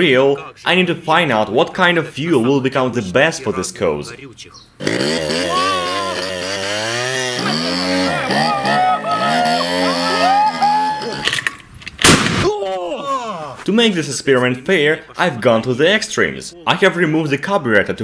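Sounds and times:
scooter engine revving: 4.8s - 11.2s.

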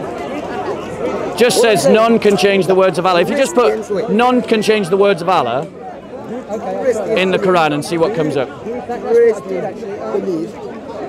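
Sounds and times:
crowd chatter: 0.0s - 11.0s
loud voice: 1.4s - 2.3s.

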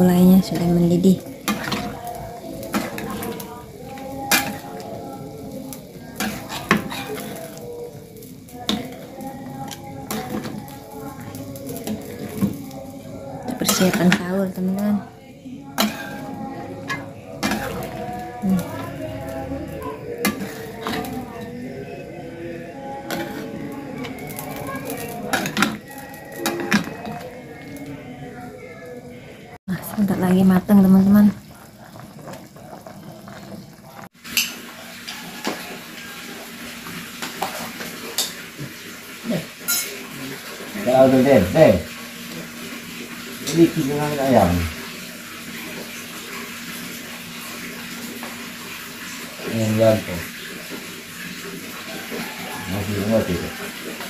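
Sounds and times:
curry bubbling: 0.0s - 28.7s, 29.5s - 54.0s.

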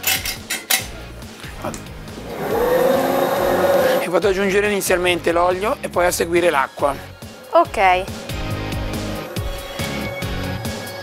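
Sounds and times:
dough mixer motor whine: 2.2s - 4.0s.

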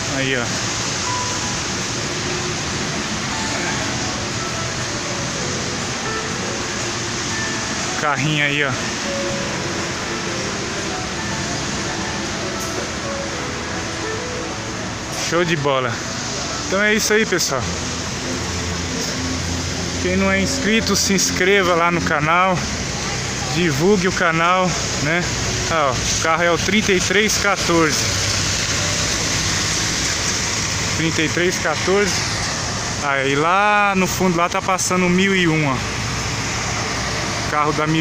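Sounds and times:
coach engine and air conditioning humming: 0.0s - 38.0s
faint music: 0.0s - 38.0s
loud even hiss: 0.0s - 38.0s.

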